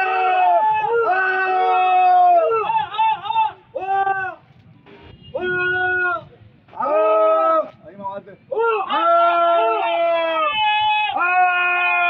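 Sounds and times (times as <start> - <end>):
person shouting long calls: 0.0 - 4.4, 8.5 - 12.0.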